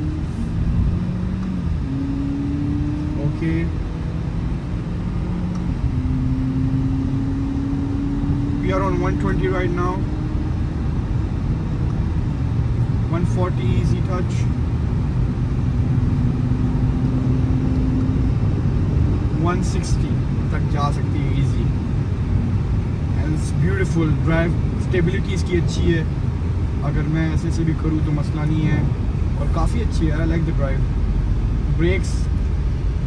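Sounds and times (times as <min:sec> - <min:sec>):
car engine and road rumble: 0:00.0 - 0:33.0.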